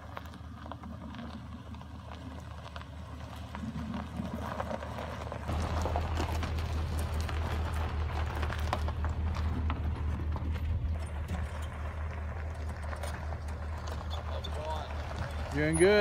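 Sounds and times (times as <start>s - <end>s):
stones crunching under tyres: 0.0s - 16.0s
vehicle engine running: 0.0s - 16.0s.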